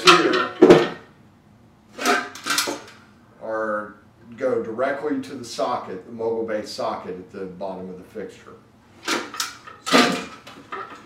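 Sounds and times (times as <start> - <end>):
light fixture housing clattering: 0.0 - 1.1, 2.0 - 3.0, 9.0 - 11.0.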